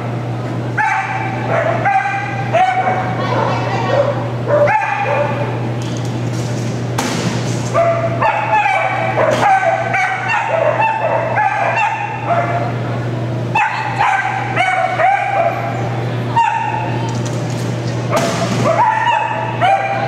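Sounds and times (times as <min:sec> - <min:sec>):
dog yipping: 0:00.8 - 0:05.5, 0:07.8 - 0:12.7, 0:13.6 - 0:15.7, 0:16.4 - 0:16.9, 0:18.6 - 0:20.0.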